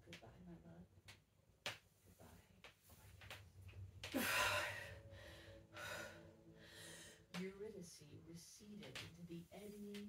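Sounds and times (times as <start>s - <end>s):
heavy breaths: 4.1s - 7.3s.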